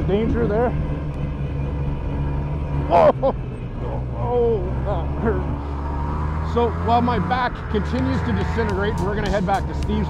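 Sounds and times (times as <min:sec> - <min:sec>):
snowmobile engine running: 0:00.0 - 0:10.0.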